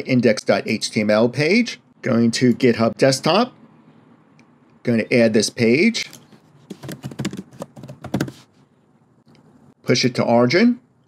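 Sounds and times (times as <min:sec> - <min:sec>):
computer keyboard typing: 0:06.6 - 0:08.4.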